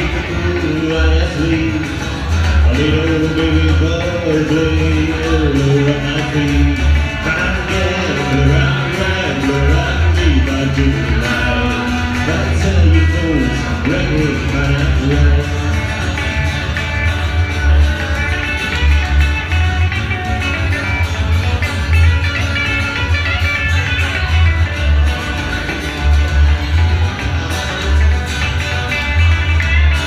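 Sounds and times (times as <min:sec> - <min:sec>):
electric lead guitar: 0:00.0 - 0:30.0
strummed acoustic guitar: 0:00.0 - 0:30.0
upright double bass: 0:00.0 - 0:30.0.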